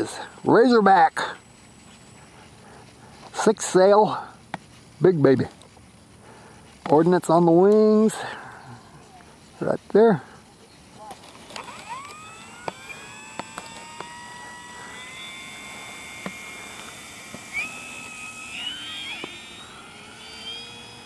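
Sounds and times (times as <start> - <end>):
electric motor and propeller whining: 0.0 - 21.0
sharp clicks: 11.4 - 14.4, 16.2 - 19.7.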